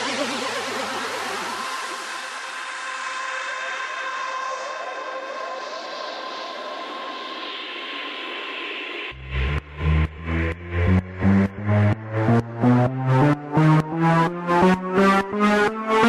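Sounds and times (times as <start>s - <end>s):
synthesized noise sweep: 4.8s - 16.0s
steady synth tones: 9.2s - 16.0s
wobbling bass: 9.2s - 16.0s.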